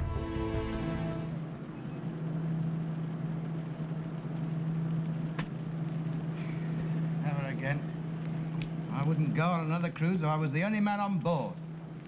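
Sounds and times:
aeroplane engines droning: 0:00.0 - 0:12.0
man speaking: 0:07.2 - 0:07.9, 0:08.9 - 0:11.6.

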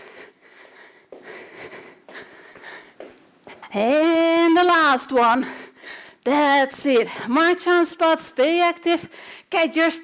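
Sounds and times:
woman breathing hard: 0:00.0 - 0:03.7, 0:05.4 - 0:06.3, 0:09.1 - 0:09.5.

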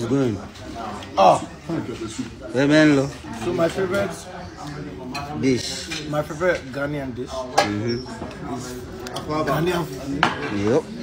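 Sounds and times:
plates and cutlery clinking: 0:05.0 - 0:11.0.

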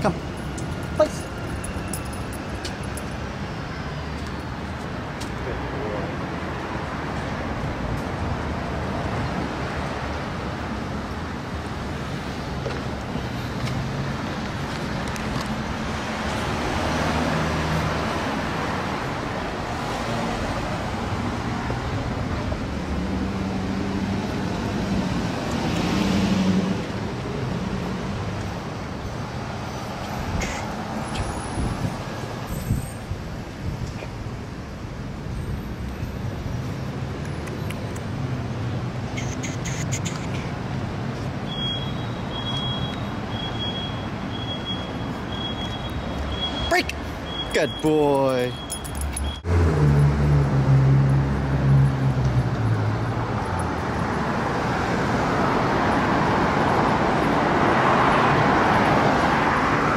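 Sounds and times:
street traffic noise: 0:00.0 - 0:59.9
vehicles passing: 0:00.0 - 0:59.9.

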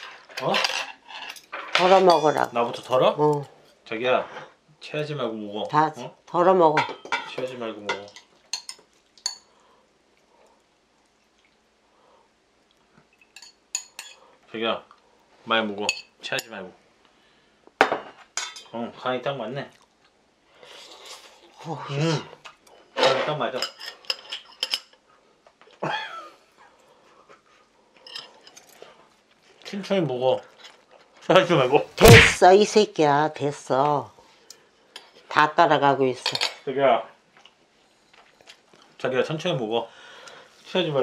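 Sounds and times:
metal spoon clinking against dishes: 0:06.8 - 0:09.5, 0:13.2 - 0:14.2, 0:15.8 - 0:16.6, 0:23.6 - 0:25.0.

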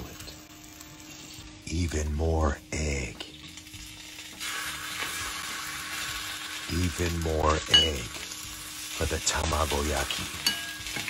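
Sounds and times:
egg sizzling in hot pan: 0:00.0 - 0:01.7, 0:03.2 - 0:11.0.

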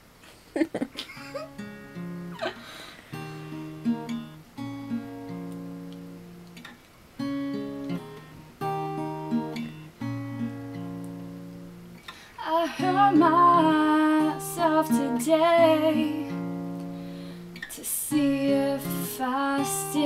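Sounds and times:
acoustic guitar chords: 0:01.2 - 0:20.0.

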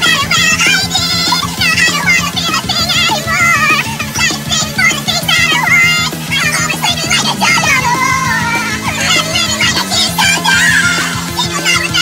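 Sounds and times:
backing track with chords and beat: 0:00.0 - 0:12.0
high-pitched singing with vibrato: 0:00.0 - 0:12.0.

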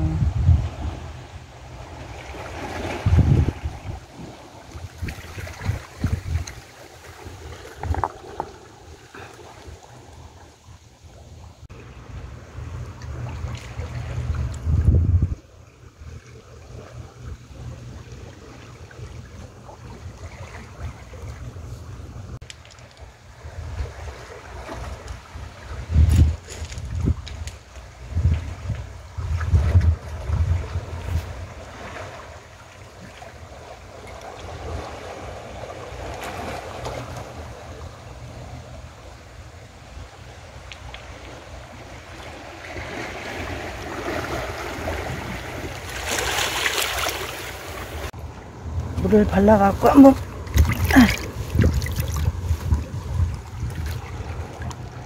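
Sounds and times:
wind buffeting microphone: 0:00.0 - 0:22.4, 0:23.0 - 0:33.6, 0:41.5 - 0:55.0
waves lapping on stones: 0:01.6 - 0:10.6, 0:22.4 - 0:37.9, 0:40.3 - 0:55.0.

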